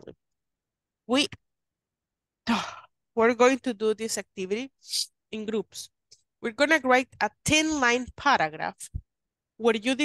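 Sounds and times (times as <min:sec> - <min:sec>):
person sighing: 0:02.5 - 0:02.9.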